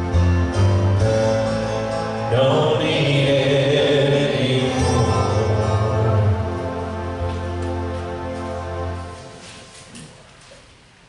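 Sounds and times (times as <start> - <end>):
worship music with singing: 2.0 - 10.2.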